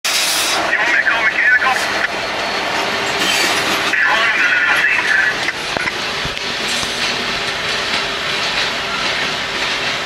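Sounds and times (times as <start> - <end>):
train wheels rumbling on rail: 0.0 - 10.0
train wheels squealing: 1.8 - 3.7, 8.0 - 10.0.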